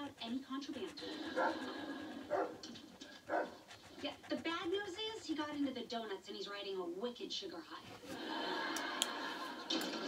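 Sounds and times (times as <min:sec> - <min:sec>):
dog barking on television: 0:00.0 - 0:06.1.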